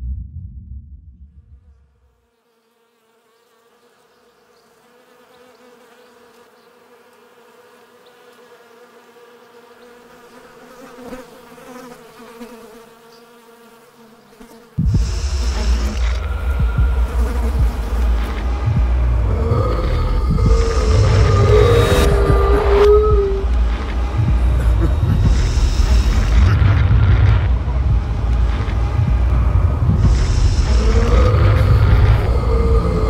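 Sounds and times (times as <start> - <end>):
low rumbling horror music drone: 0.0 - 1.9, 14.8 - 33.0
insect buzzing: 1.9 - 33.0.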